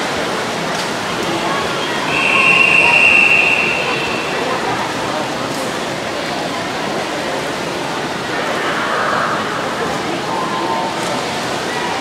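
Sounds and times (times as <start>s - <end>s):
crowd noise: 0.0s - 12.0s
high whistle tone: 1.7s - 5.4s.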